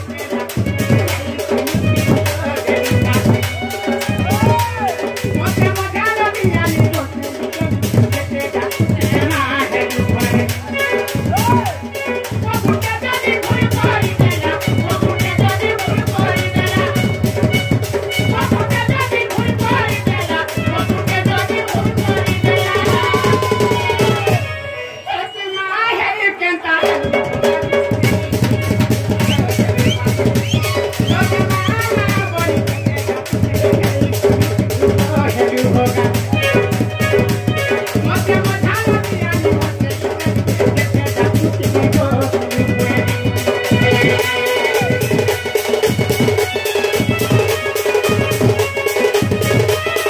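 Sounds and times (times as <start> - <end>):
barrel drum beat: 0.0 - 24.8, 26.8 - 50.0
held melody line: 0.0 - 50.0.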